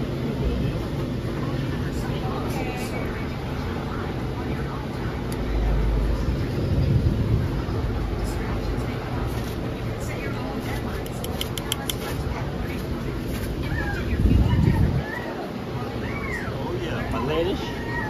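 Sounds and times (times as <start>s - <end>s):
faint voices: 0.0s - 18.0s
low rumble: 5.5s - 9.2s.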